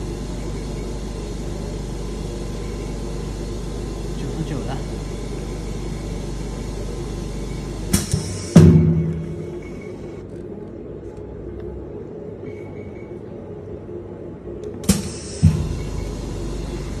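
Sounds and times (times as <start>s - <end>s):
machine low hum: 0.0s - 17.0s.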